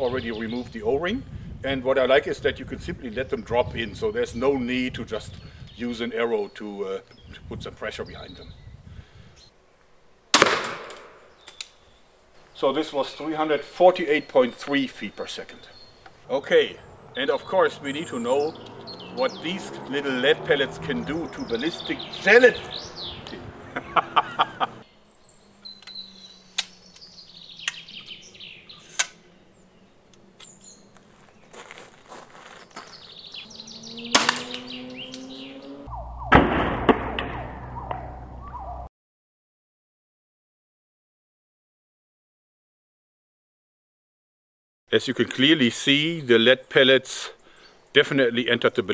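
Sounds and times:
birds chirping: 0.0s - 9.6s, 11.1s - 36.4s, 37.2s - 38.9s, 44.9s - 48.9s
crossbow shot crack: 10.3s - 11.7s, 34.1s - 34.6s, 36.3s - 38.1s
crossbow string cracking: 25.8s - 27.8s, 28.8s - 29.2s, 34.2s - 34.6s
loud crack in burst of noise: 36.3s - 37.4s.

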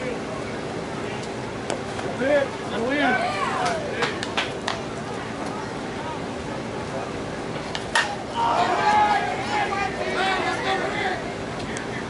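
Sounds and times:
bat hitting ball crack: 7.7s - 8.2s
people shouting: 8.0s - 11.3s.

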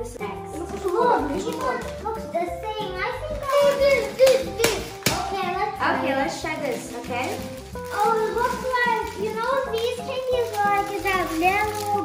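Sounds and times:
young children talking: 0.9s - 6.0s, 7.9s - 12.0s.

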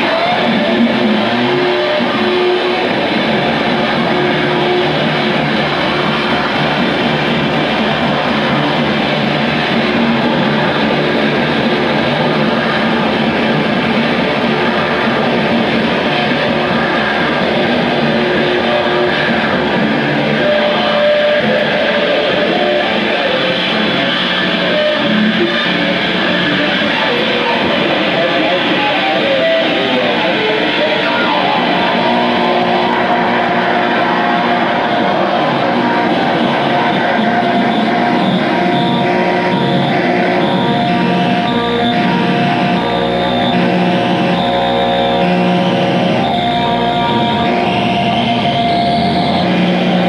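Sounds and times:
distorted electric guitars: 0.0s - 50.0s
held guitar tones ringing: 0.0s - 50.0s.

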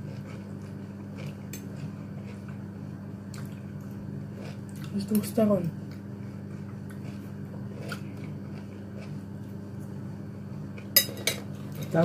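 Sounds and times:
steady low hum: 0.0s - 12.0s
forks clinking on a plate: 11.0s - 12.0s.

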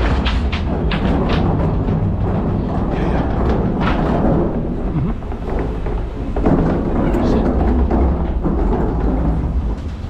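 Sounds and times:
wheelie bin rolling over concrete: 0.0s - 10.0s.

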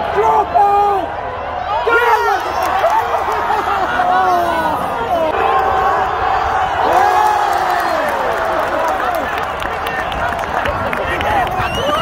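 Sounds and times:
crowd shouting and cheering: 0.0s - 12.0s
scattered clapping: 6.9s - 12.0s.

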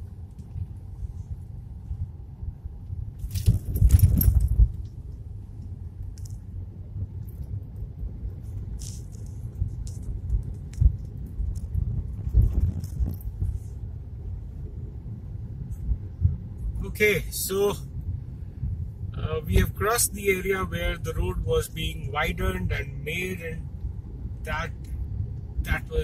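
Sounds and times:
road and engine rumble: 0.0s - 26.0s.

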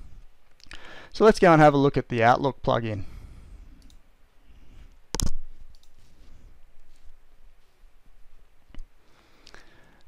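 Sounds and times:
computer mouse click: 3.8s - 4.0s, 5.1s - 6.0s
faint clicks: 3.8s - 4.0s.

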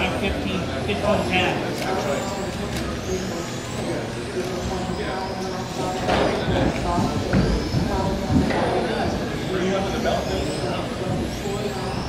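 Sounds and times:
rc car motors whining: 0.0s - 12.0s
voices in background: 0.0s - 12.0s.

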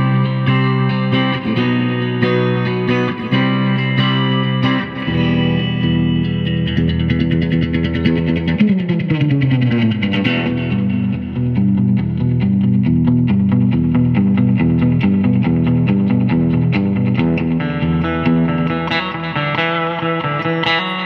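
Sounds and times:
electric guitar through tube amp: 0.0s - 21.0s.

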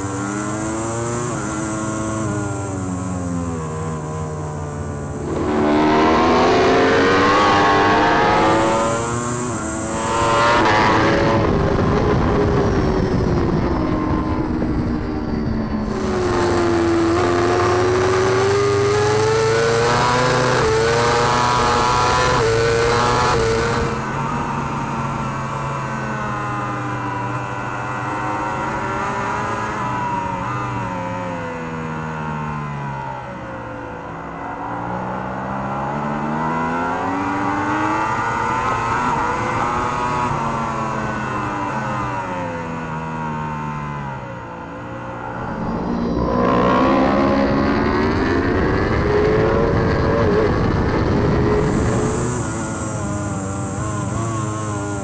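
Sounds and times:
motorcycle engine at high revs: 0.0s - 55.0s
loud rush of wind: 5.1s - 18.2s, 45.2s - 53.5s.

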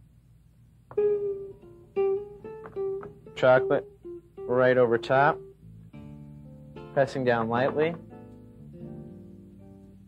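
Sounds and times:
plucked string notes: 0.9s - 10.0s.

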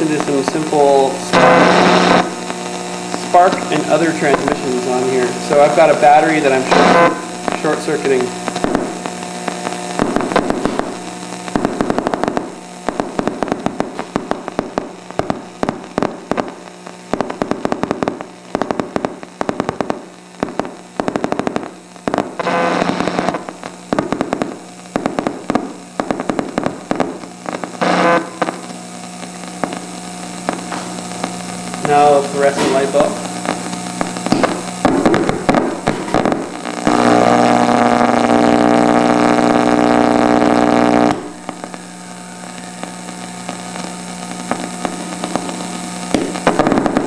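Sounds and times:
radio crackling clicks and pops: 0.0s - 47.0s
steady hum: 0.0s - 47.0s.

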